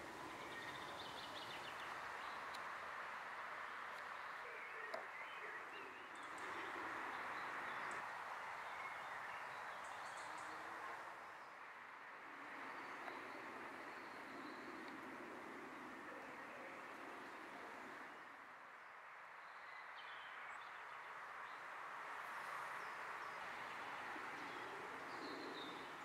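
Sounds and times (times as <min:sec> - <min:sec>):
outdoor background noise: 0:00.0 - 0:26.0.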